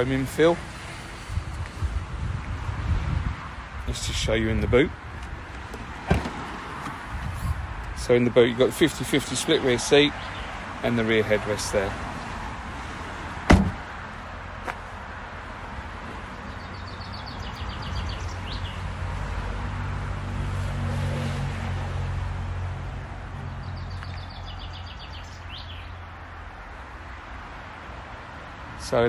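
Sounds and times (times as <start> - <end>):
vehicle engine rumble: 0.0 - 29.0
car tailgate slamming shut: 6.0 - 6.6, 13.4 - 13.9.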